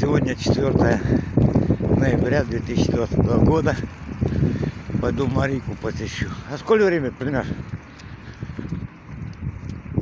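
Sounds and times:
footsteps walking: 0:07.4 - 0:10.0.

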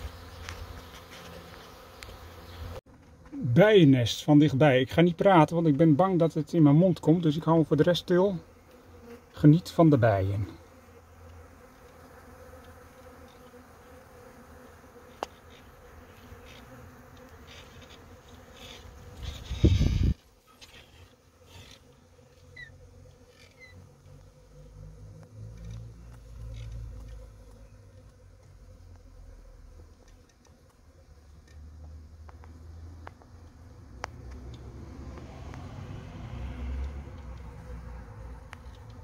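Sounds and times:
bee swarm buzzing: 0:00.0 - 0:39.0.

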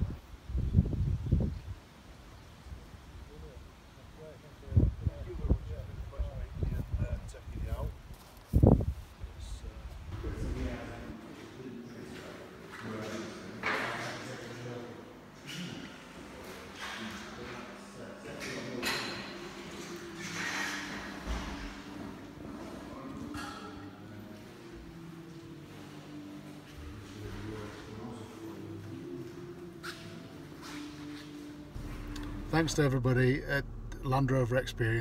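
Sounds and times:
wind buffeting microphone: 0:00.0 - 0:01.8, 0:04.6 - 0:10.4
indistinct echoing voices: 0:10.9 - 0:35.0.

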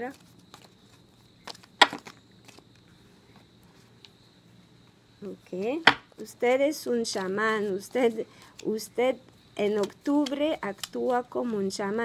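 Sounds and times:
playing cards being shuffled: 0:00.0 - 0:02.8.

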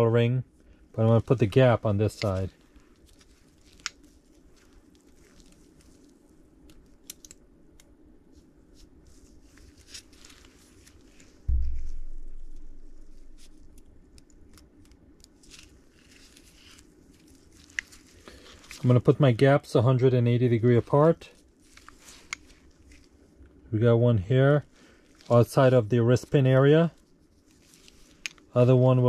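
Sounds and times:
rubber gloves rustling: 0:00.6 - 0:23.6, 0:24.6 - 0:29.0
small metal clicks: 0:06.6 - 0:07.9
dull low thump: 0:11.5 - 0:13.8.

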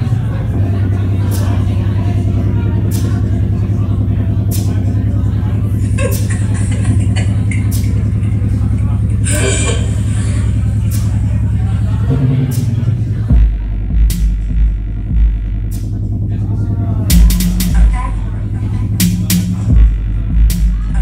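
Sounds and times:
crowd voices: 0:00.0 - 0:21.0
pulsing electronic music: 0:00.0 - 0:21.0.

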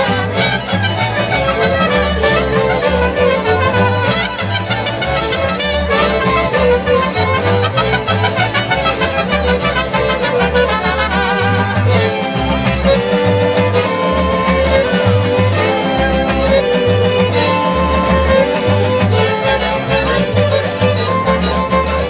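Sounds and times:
deep pulsing bass guitar notes: 0:00.0 - 0:22.0
strummed guitars: 0:00.0 - 0:22.0
violins playing melody: 0:00.0 - 0:22.0.

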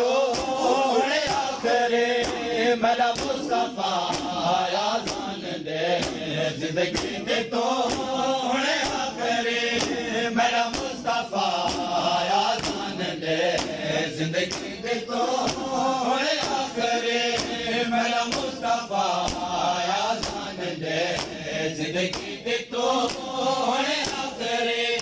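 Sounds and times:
men chanting in unison: 0:00.0 - 0:25.0
hands slapping chests: 0:00.3 - 0:08.2, 0:08.8 - 0:24.4.

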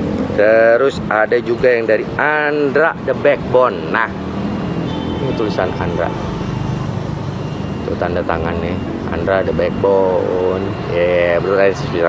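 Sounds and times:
street traffic with engine hum: 0:00.0 - 0:12.0.

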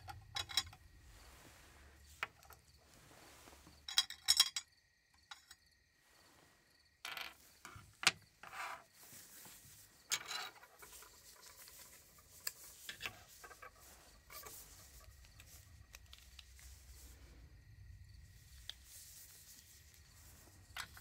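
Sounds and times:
soft rubbing: 0:00.8 - 0:03.9, 0:08.4 - 0:21.0.

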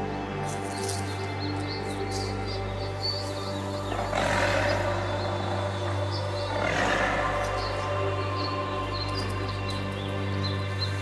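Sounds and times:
bass drone: 0:00.0 - 0:11.0
sustained synth pad: 0:00.0 - 0:11.0.

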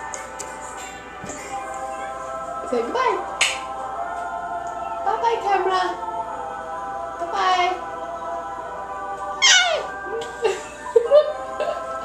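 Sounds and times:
background song: 0:00.0 - 0:12.0.

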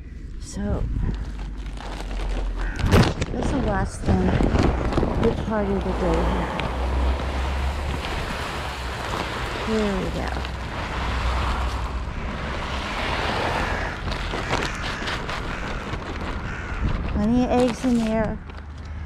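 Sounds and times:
wind buffeting microphone: 0:00.0 - 0:18.6
low rumble: 0:00.0 - 0:19.0
plastic sack rustling: 0:00.9 - 0:18.7.

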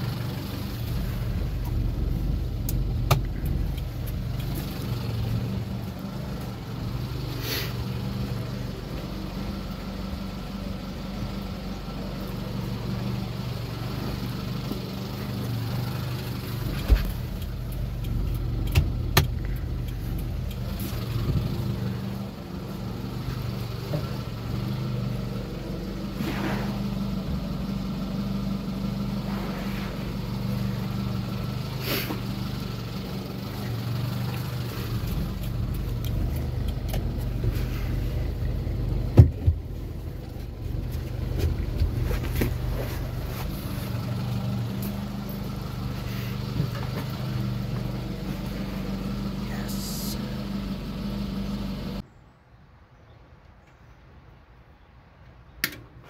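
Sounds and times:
engine idling: 0:00.0 - 0:52.0
sharp clicks: 0:02.6 - 0:04.9, 0:17.0 - 0:21.4.

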